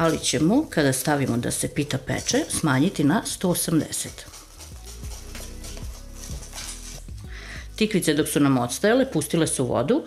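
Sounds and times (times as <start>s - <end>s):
whisk beating batter in glass bowl: 0.0s - 7.2s
soft background music: 0.0s - 10.0s.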